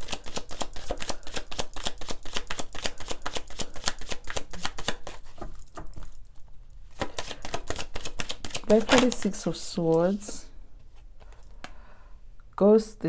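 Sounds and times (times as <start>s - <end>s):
cards being shuffled: 0.0s - 6.3s, 6.9s - 11.7s.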